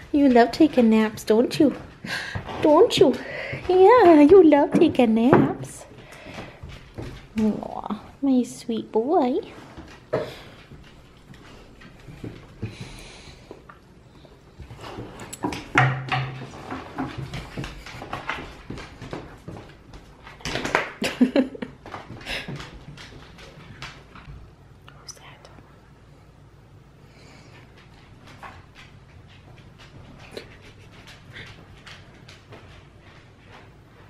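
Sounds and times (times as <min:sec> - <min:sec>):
pet breathing sounds: 0:01.9 - 0:03.9, 0:10.1 - 0:15.4
dog claws clicking on floor: 0:09.6 - 0:24.4, 0:27.3 - 0:33.7.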